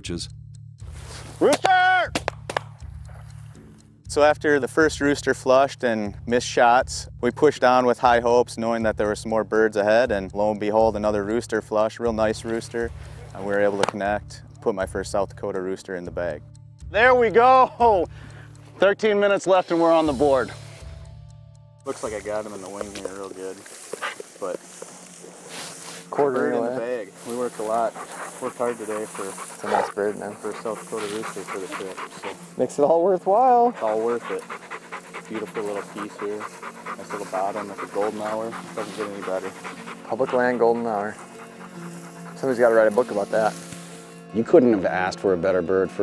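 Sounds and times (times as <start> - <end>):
rustling in dry grass: 21.9 - 44.2
short hiss: 43.5 - 44.3.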